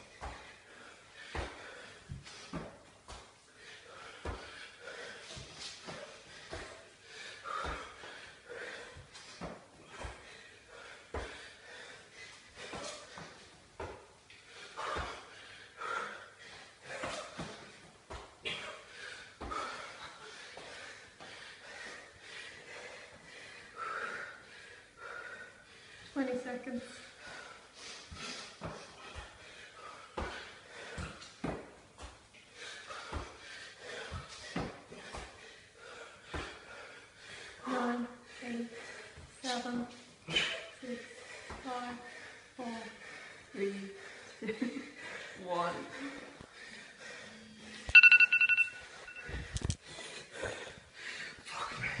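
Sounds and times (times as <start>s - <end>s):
man breathing hard: 0.0s - 26.2s, 26.8s - 47.9s, 48.8s - 52.0s
timer alarm beeping: 47.9s - 49.3s.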